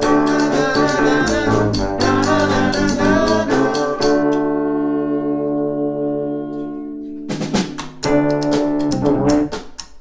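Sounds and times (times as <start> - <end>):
brass and electric piano chord: 4.3 - 7.3.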